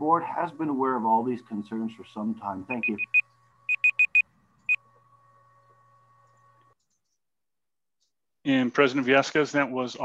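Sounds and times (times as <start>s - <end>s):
quick high alarm beeps: 2.7s - 4.8s.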